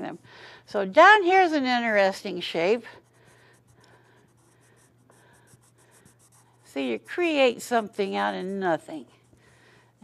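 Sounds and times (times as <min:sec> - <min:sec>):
charcoal pencil scratching paper: 0:02.2 - 0:09.9.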